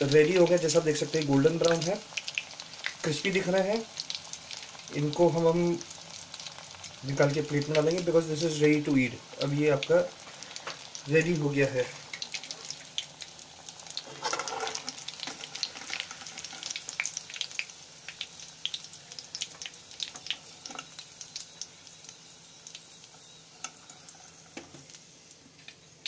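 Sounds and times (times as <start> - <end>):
deep-frying sizzle and pops: 0.0 - 26.0.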